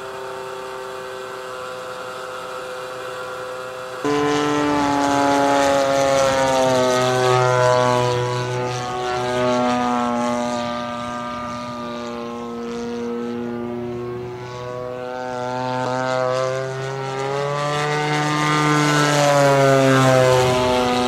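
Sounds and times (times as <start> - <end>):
model aircraft engine droning: 0.0 - 21.0.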